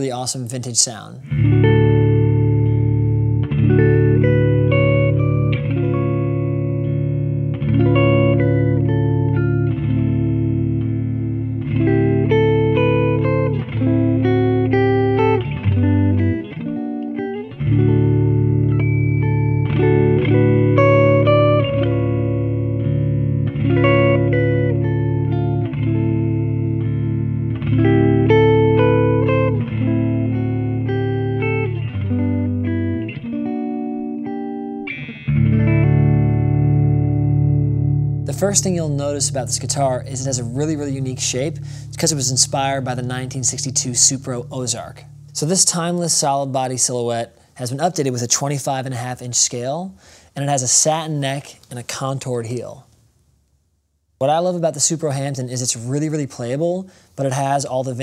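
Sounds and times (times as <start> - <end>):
electric guitar strummed through amplifier: 1.2 - 47.2.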